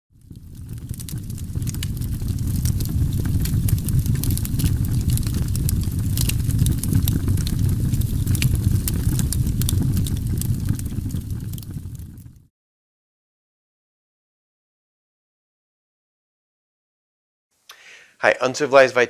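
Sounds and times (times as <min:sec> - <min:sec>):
campfire crackling and popping: 0:00.1 - 0:12.5.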